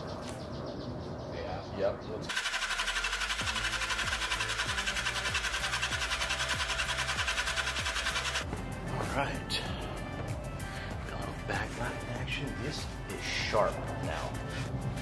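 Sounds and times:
drill motor hum: 2.3 - 8.4
pulsing metallic rasp: 2.3 - 8.4.

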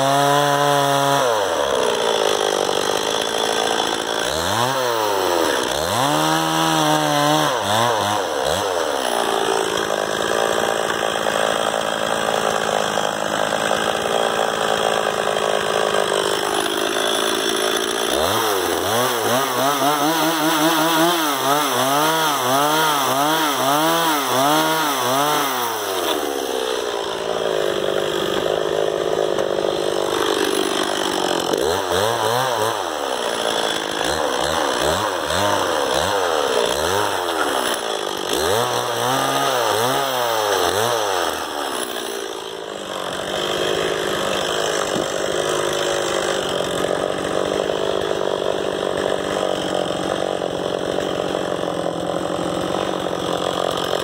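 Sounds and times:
chainsaw cutting a log: 0.0 - 54.0.

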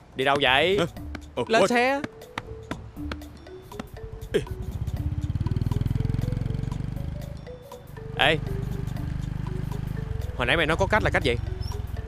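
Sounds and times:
motorcycle engine rumble: 3.1 - 12.0.

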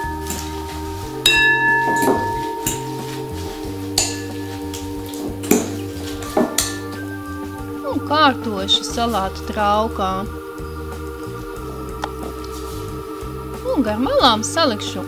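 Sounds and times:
salad servers clinking on glass bowl: 0.0 - 7.3
background music with held notes: 0.0 - 15.0.

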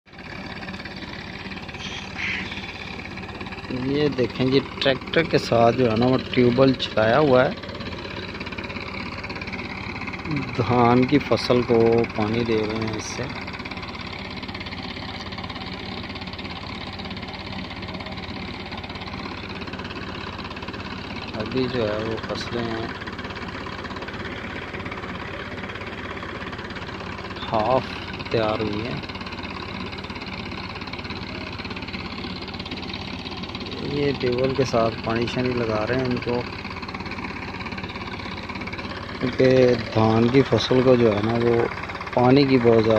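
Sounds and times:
diesel engine running: 0.0 - 42.9.

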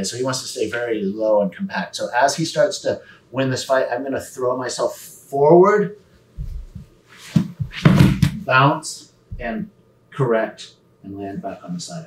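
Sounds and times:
bodies scuffing on mat: 6.4 - 8.4
dull thud on foam mat: 6.4 - 8.4.

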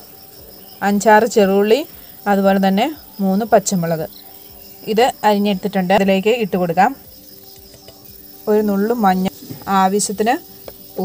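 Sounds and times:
crickets chirring: 0.0 - 11.0
woman speaking: 0.8 - 4.1, 4.8 - 7.0, 8.5 - 11.0.

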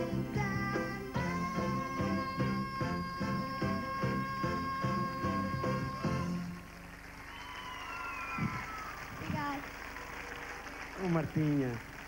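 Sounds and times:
audience applauding and cheering: 5.5 - 12.0.

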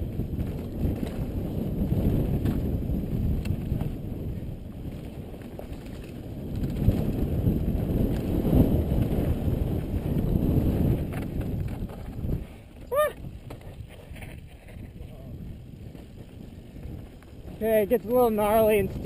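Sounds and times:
bike tyres rolling over dirt: 0.0 - 19.0
wind rumbling on microphone: 0.0 - 19.0
bike clicks: 0.1 - 17.6.

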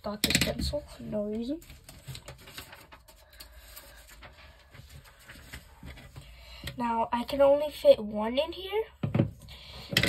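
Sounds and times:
paper rustling: 1.2 - 6.2.

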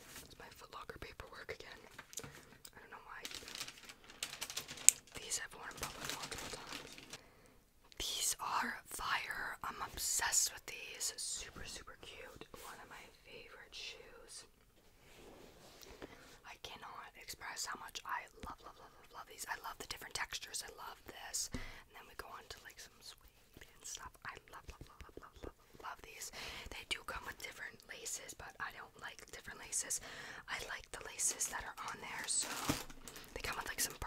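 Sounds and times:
person whispering: 0.2 - 1.9, 2.7 - 3.7, 5.1 - 7.1, 7.9 - 14.5, 16.4 - 34.0
paper and packaging rustling: 3.1 - 7.2, 31.2 - 34.0.

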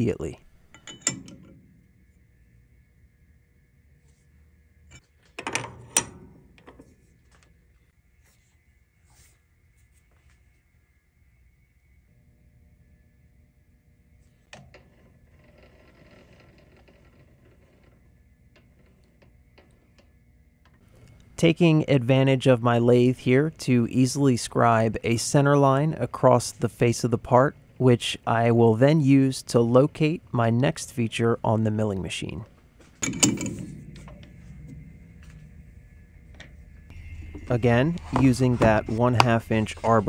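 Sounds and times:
faint steady hum: 0.0 - 40.0
light scraping: 32.8 - 40.0
sharp metal clank: 33.0 - 34.9.

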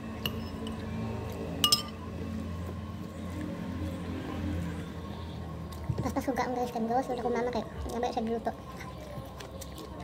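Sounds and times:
clinks against ceramic plate: 0.2 - 0.8, 1.6 - 2.0.

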